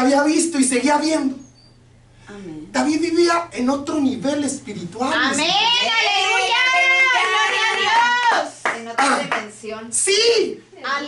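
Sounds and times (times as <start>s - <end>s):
hand claps: 8.3s - 9.5s.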